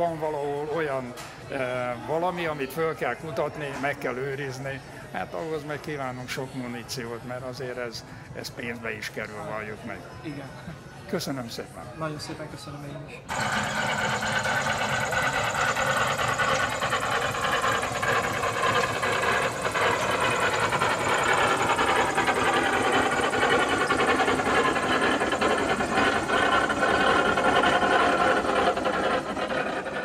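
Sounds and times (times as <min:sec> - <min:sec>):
engine running with rattle: 0:13.3 - 0:30.0.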